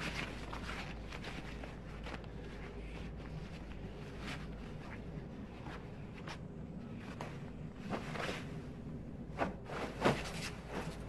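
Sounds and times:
rustling and movement: 0.0s - 11.0s
train carriage rumble: 0.0s - 11.0s.

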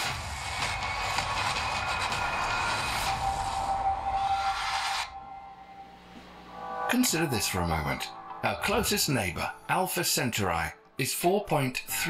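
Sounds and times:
music: 0.0s - 12.0s.

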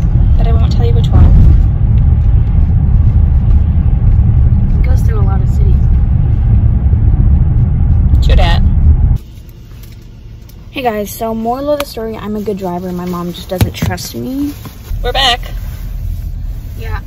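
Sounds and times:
road noise inside car: 0.0s - 17.0s.

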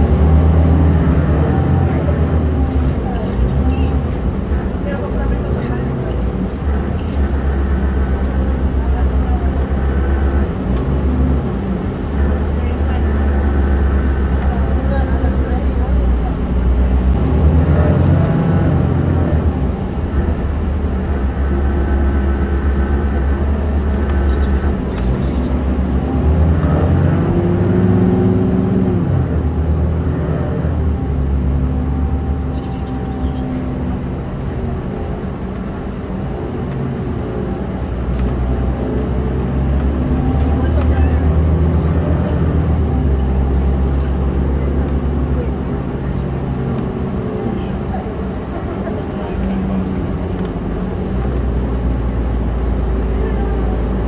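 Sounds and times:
bus engine drone: 0.0s - 54.0s
road noise: 0.0s - 54.0s.

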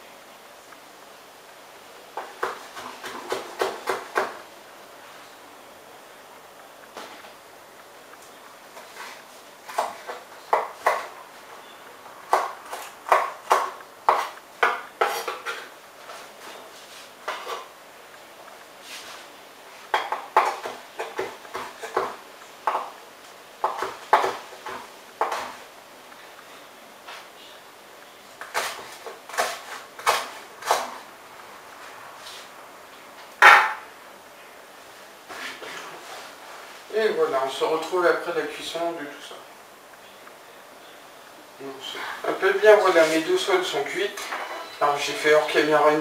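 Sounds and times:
knife chopping on wooden board: 23.6s - 25.6s.

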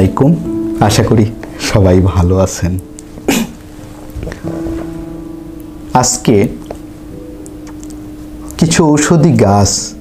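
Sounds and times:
held background music tone: 0.0s - 10.0s.

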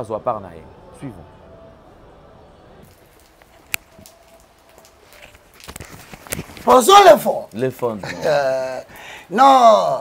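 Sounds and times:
background hiss: 2.6s - 10.0s.

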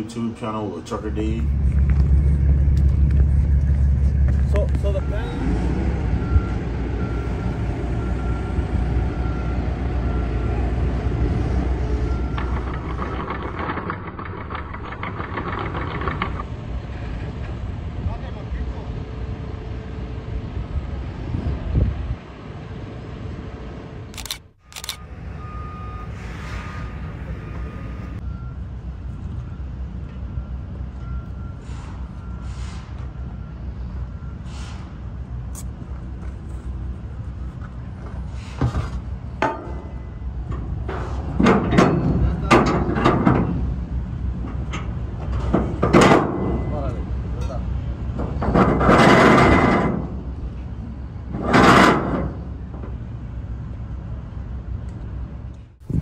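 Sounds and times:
heavy diesel equipment running: 0.0s - 56.0s
backup alarm beeping: 4.8s - 5.6s.

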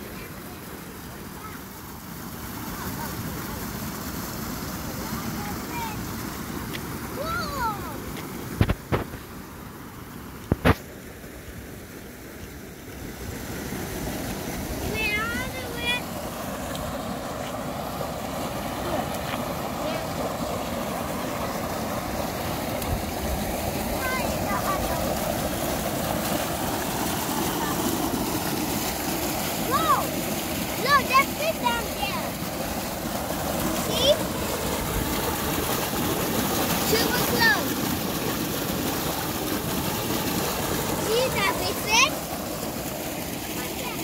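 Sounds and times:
water pouring from a pipe: 12.8s - 44.0s.

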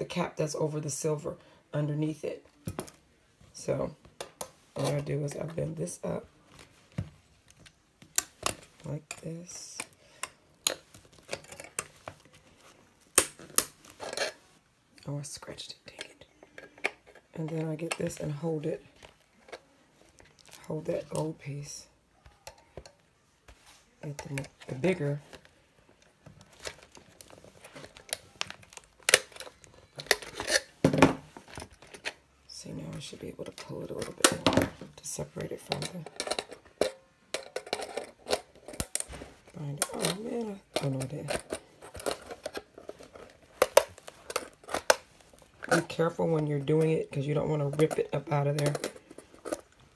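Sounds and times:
pliers scraping metal: 28.0s - 30.8s, 39.8s - 45.0s.

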